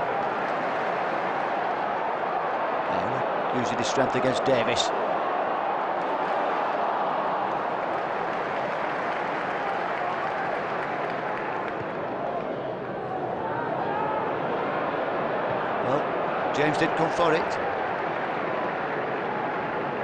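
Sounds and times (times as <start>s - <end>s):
stadium crowd din: 0.0s - 20.0s.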